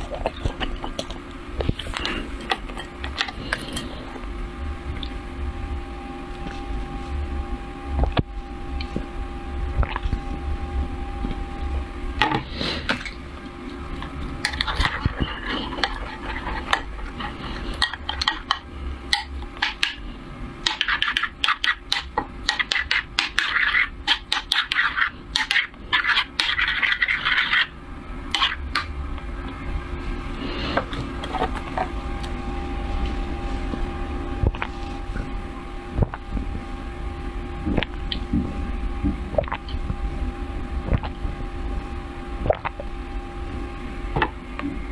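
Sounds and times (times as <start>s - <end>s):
metal spoon scraping pan: 20.7s - 27.7s.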